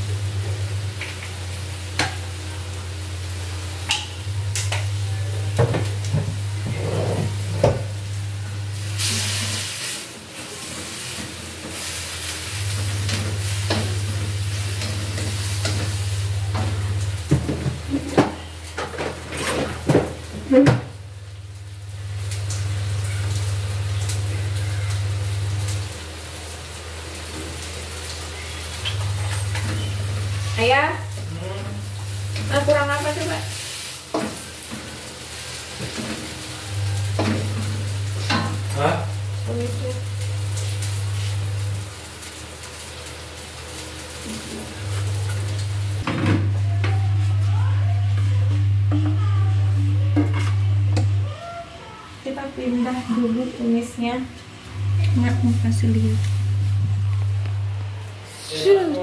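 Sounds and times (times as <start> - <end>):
food sizzling in a pan: 0.0 - 59.0
loud low hum: 54.6 - 58.2.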